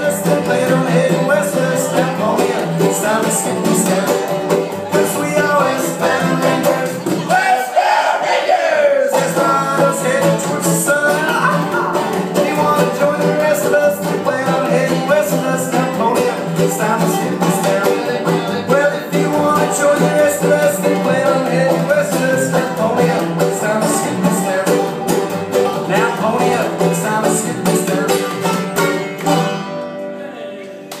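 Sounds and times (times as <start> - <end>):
mandolin: 0.0 - 7.5, 9.1 - 31.0
upright bass: 0.0 - 7.6, 9.1 - 31.0
banjo: 0.0 - 30.4
guitar: 0.0 - 31.0.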